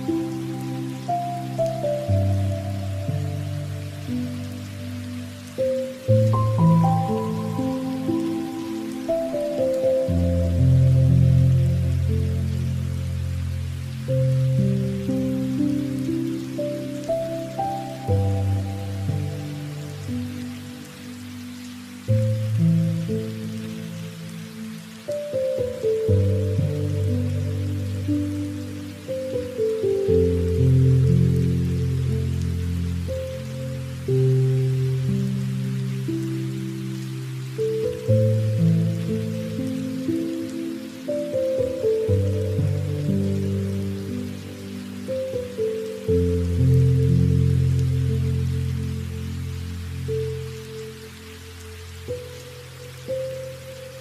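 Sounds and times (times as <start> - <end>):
soft low background music: 0.0 - 54.0
steady rain: 0.0 - 54.0.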